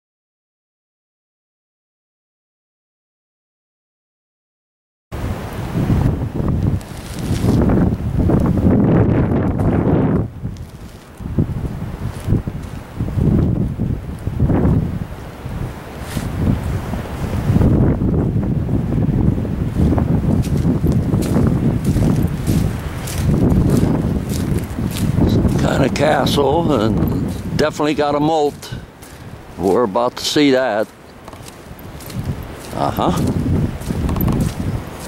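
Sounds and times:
wind buffeting microphone: 0:05.2 - 0:35.0.

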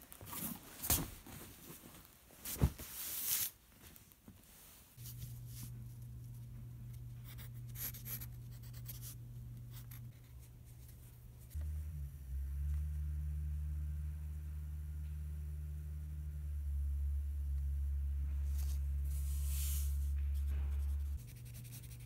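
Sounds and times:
low steady hum: 0:04.5 - 0:22.0
deeper steady hum: 0:05.0 - 0:22.0
pencil scratching on paper: 0:07.2 - 0:10.5, 0:19.3 - 0:22.0.

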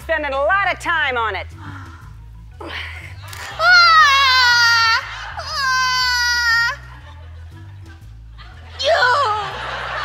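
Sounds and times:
woman screaming: 0:03.6 - 0:06.8, 0:08.8 - 0:09.6.

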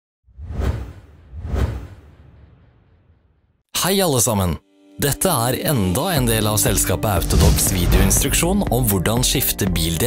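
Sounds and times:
whoosh with deep boom: 0:00.3 - 0:03.5.

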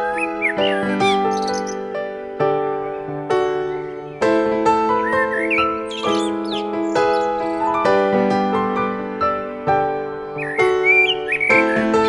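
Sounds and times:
bird calls chirping: 0:00.0 - 0:01.8, 0:05.0 - 0:07.8, 0:10.4 - 0:12.0
slow piano music: 0:00.0 - 0:12.0.

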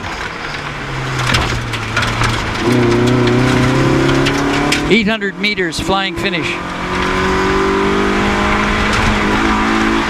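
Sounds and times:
rally car engine accelerating: 0:00.0 - 0:10.0.

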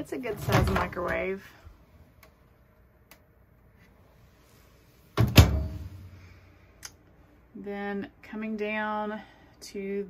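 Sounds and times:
microwave door closing thunk: 0:05.2 - 0:05.9.

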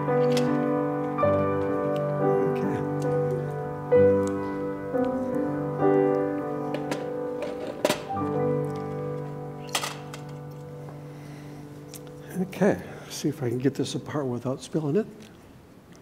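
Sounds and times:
sustained piano-like chords: 0:00.0 - 0:15.0.

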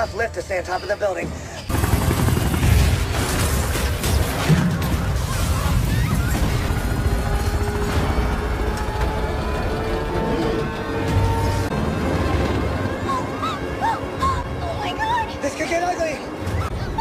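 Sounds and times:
film music with held tones: 0:00.0 - 0:17.0.

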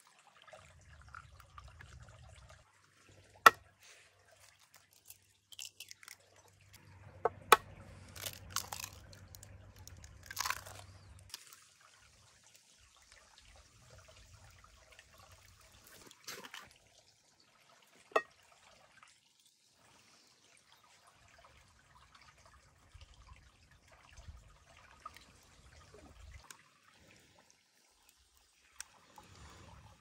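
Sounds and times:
eggshells cracking: 0:04.4 - 0:06.2, 0:07.4 - 0:11.6.

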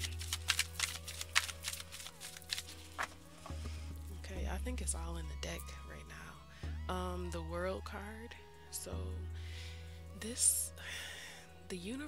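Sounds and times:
cards being shuffled: 0:00.0 - 0:03.7
soft background music: 0:00.0 - 0:12.0.

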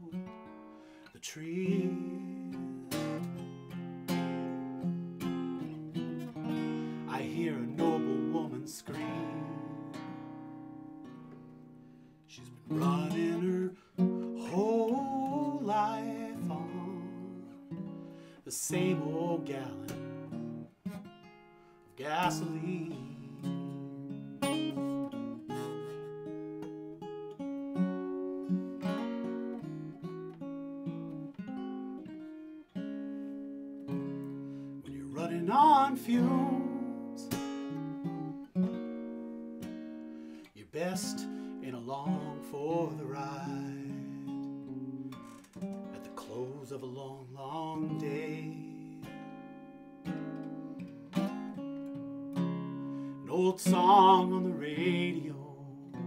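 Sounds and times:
acoustic guitar chords: 0:00.0 - 0:56.0.

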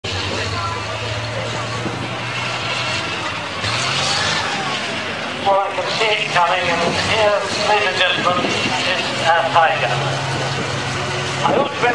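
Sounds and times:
tank engine droning: 0:00.0 - 0:11.9.

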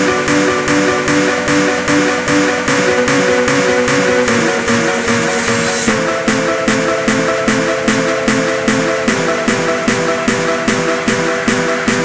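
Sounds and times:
hardstyle electronic music: 0:00.0 - 0:12.0
rising noise sweep: 0:00.9 - 0:06.0.

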